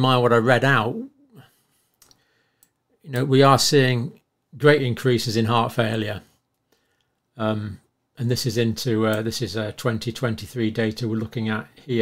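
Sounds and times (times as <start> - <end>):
person speaking: 0.0 - 1.5, 7.4 - 12.0
faint breath: 1.3 - 2.9, 6.6 - 7.3
faint short clicks: 1.9 - 2.8.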